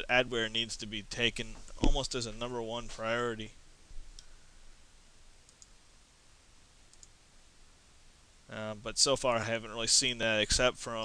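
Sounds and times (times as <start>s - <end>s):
computer mouse clicks: 5.5s - 5.8s, 6.9s - 7.1s.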